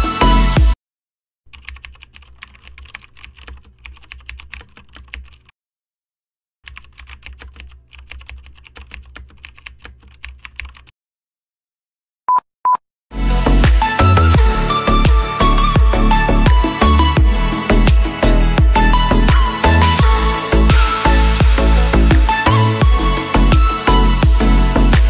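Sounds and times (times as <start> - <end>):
music: 0.0 - 0.8, 13.1 - 25.0.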